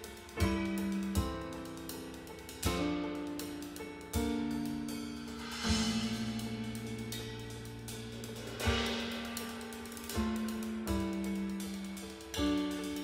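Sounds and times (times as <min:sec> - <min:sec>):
cymbal and hi-hat strokes: 0:00.0 - 0:13.0
piano and bass chords: 0:00.0 - 0:13.0.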